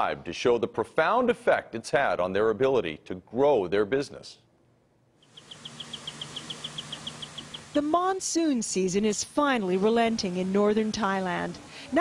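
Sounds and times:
background hiss: 0:00.0 - 0:12.0
insect chirping rapidly: 0:05.2 - 0:08.0.

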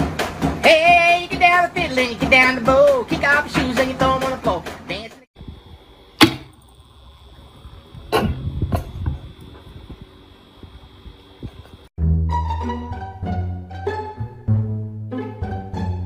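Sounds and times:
electric fan whine: 0:05.4 - 0:11.9
sharp click: 0:06.2 - 0:06.6.

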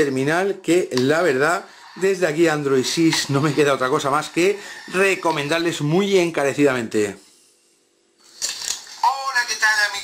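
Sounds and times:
man's voice: 0:00.0 - 0:06.9
hissy smartphone loudspeaker audio: 0:08.8 - 0:10.0.

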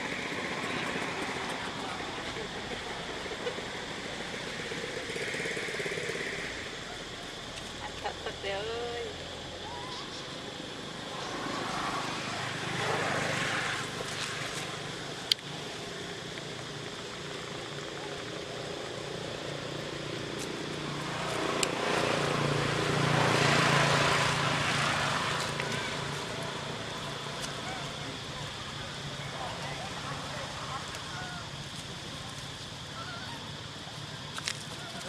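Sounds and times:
passing engine drone: 0:00.0 - 0:16.2, 0:18.0 - 0:31.6.

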